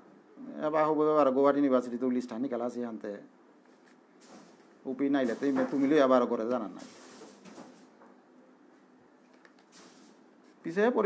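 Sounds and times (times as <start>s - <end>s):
man speaking: 4.9s - 6.9s, 10.6s - 11.0s.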